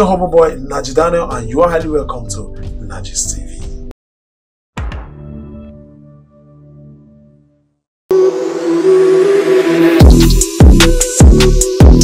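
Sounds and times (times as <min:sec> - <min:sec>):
intro music: 0:04.8 - 0:12.0
hiss rising in pitch: 0:08.1 - 0:11.2.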